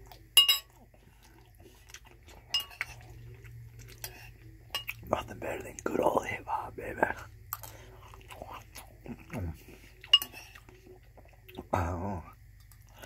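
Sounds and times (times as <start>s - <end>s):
man chewing wetly: 0.0s - 5.1s, 7.4s - 11.7s
spoon clinking on bowl: 0.4s - 0.8s, 2.5s - 3.0s, 4.7s - 5.0s, 10.1s - 10.4s
man murmuring mm: 11.6s - 12.3s.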